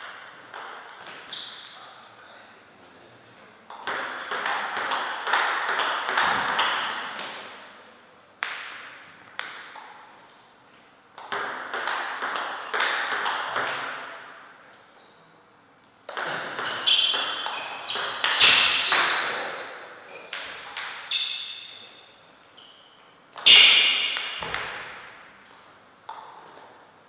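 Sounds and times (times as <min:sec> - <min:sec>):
table tennis ball hits: 0:00.0 - 0:01.8, 0:03.7 - 0:07.6, 0:08.4 - 0:10.1, 0:11.1 - 0:14.5, 0:16.1 - 0:21.9, 0:23.3 - 0:25.3.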